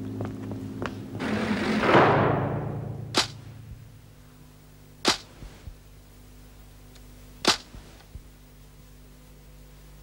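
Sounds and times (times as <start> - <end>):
low steady hum: 0.0 - 10.0
whip-like cracks: 3.1 - 3.4, 5.0 - 5.4, 7.4 - 7.8.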